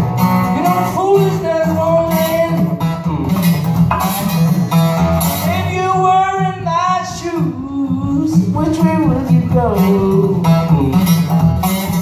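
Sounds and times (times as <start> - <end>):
acoustic guitar strumming: 0.0 - 12.0
man singing long notes: 0.5 - 3.5, 5.4 - 11.3.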